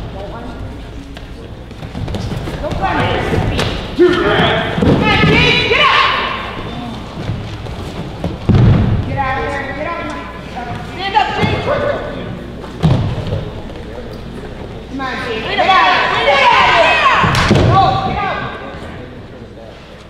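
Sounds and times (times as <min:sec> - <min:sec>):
people shouting: 0:02.8 - 0:07.1, 0:15.0 - 0:18.7
bodies thudding onto mat: 0:07.3 - 0:09.1.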